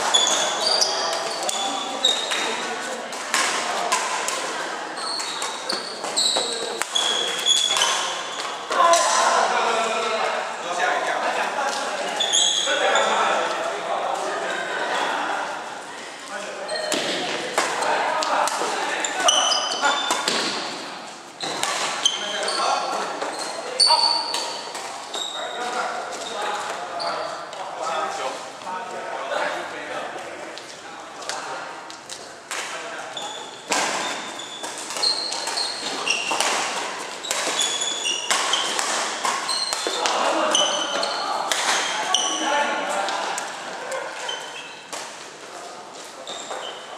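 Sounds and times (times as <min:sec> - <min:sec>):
shoe squeaks on court floor: 0:00.0 - 0:02.6, 0:05.0 - 0:08.7, 0:12.2 - 0:13.2, 0:19.0 - 0:20.6, 0:21.4 - 0:27.4, 0:33.2 - 0:42.4, 0:44.1 - 0:44.9, 0:46.2 - 0:46.9
racket hitting shuttlecock: 0:20.1 - 0:20.8, 0:33.7 - 0:42.2.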